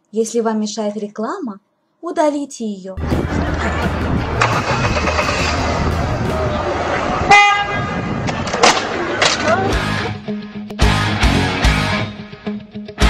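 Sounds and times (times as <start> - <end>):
car passing: 3.0 - 9.6
people's voices: 3.0 - 10.2
car horn: 4.4 - 8.2.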